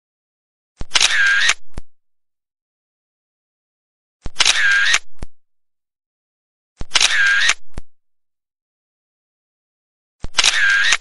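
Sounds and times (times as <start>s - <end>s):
camera shutter clicks: 0.8s - 1.8s, 4.3s - 5.3s, 6.8s - 7.9s, 10.2s - 11.0s.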